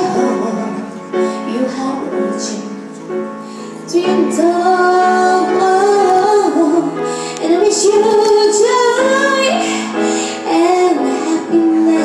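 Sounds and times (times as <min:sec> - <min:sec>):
woman singing into microphone: 0:00.0 - 0:03.0, 0:03.8 - 0:12.0.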